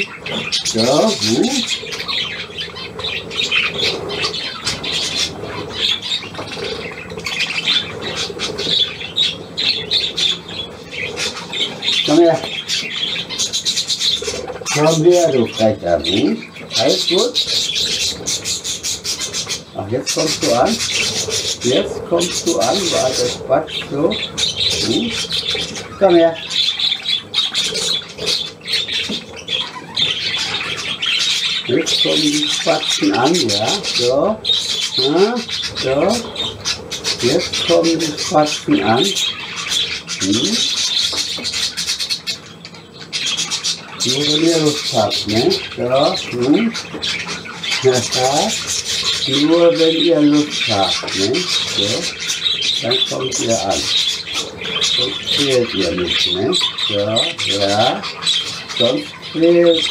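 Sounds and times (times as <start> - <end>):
budgerigars chattering and squawking: 0.0 - 59.9.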